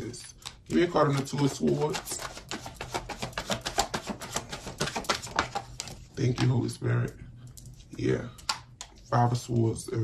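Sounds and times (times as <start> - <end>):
cards being shuffled: 0.4 - 6.6.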